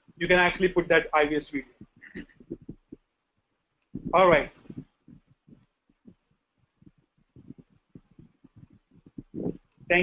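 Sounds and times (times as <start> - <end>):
faint low thumps: 1.6 - 3.0, 3.9 - 10.0.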